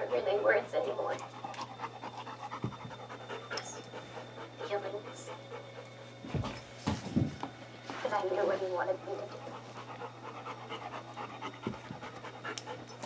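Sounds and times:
panting breaths: 1.2 - 7.0, 7.8 - 13.0.

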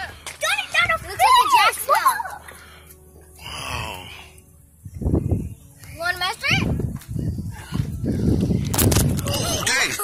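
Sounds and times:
wind buffeting microphone: 0.0 - 1.7, 4.8 - 10.0.

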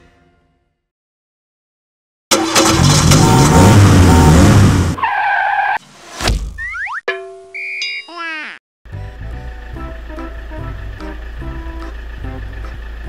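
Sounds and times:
loud engine noise: 2.3 - 5.0, 8.9 - 13.0.

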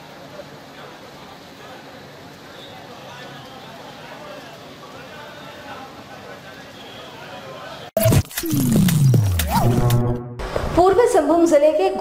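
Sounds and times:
sharp hit: 8.0 - 10.8.

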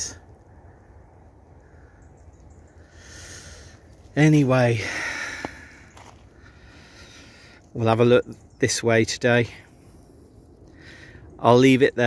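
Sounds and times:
faint outdoor background: 0.0 - 12.0
man breathing out: 2.8 - 3.8, 4.8 - 7.6.

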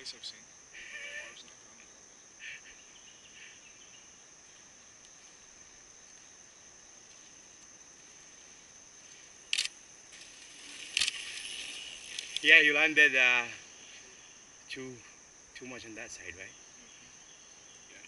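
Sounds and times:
high-pitched insect chorus: 0.0 - 18.0
bike tyres on dirt trail: 10.1 - 13.6.

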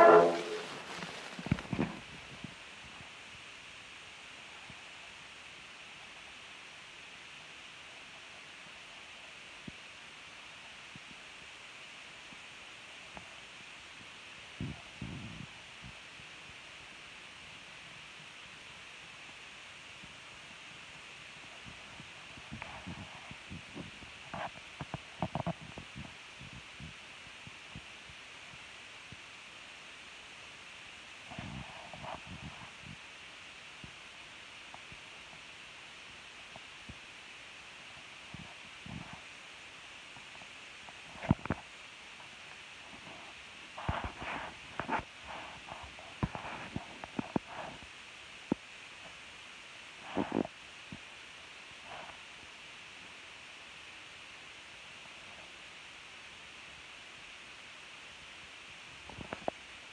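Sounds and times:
handling noise knocks and scrapes: 0.0 - 2.0
steady hiss: 0.0 - 59.9.

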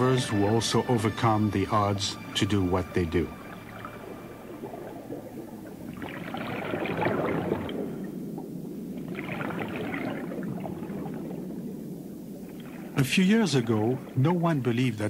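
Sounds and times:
low water hiss: 0.0 - 15.0
underwater bubbles gurgling: 0.0 - 15.0.

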